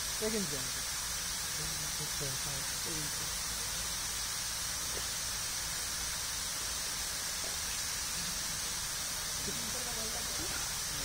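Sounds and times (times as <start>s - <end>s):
fountain water hissing: 0.0s - 11.0s.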